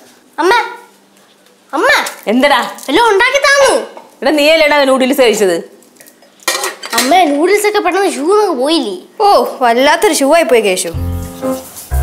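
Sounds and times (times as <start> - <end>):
cutlery and dishes clinking: 6.0 - 7.1.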